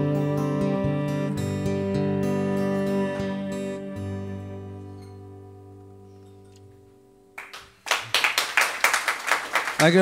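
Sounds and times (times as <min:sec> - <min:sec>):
acoustic guitar chord: 0:00.0 - 0:07.4
audience clapping: 0:07.4 - 0:10.0.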